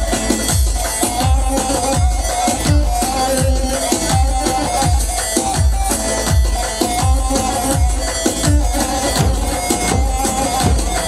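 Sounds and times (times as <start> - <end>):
bass drum beating steady rhythm: 0.0 - 11.0
held wavering melody: 0.9 - 11.0.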